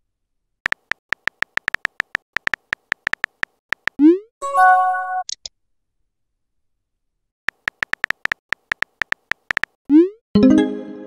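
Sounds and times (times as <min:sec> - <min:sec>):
keyboard typing ticks: 0:00.6 - 0:04.1, 0:07.5 - 0:09.8.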